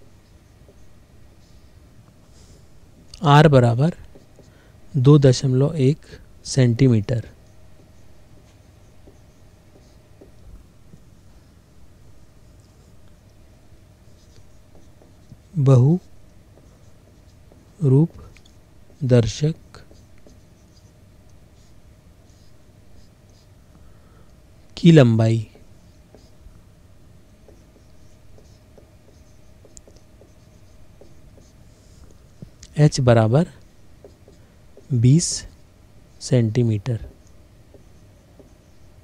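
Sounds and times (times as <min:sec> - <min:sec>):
marker writing on whiteboard: 0:00.0 - 0:01.6, 0:03.4 - 0:05.7, 0:06.8 - 0:11.1, 0:12.2 - 0:23.6, 0:25.4 - 0:39.0
faint steady hum: 0:00.0 - 0:39.0
low room hiss: 0:00.0 - 0:39.0.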